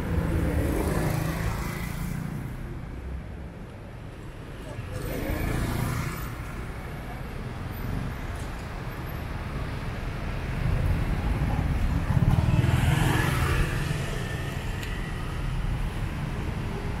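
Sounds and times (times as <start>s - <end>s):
traffic passing close by: 0.0s - 17.0s.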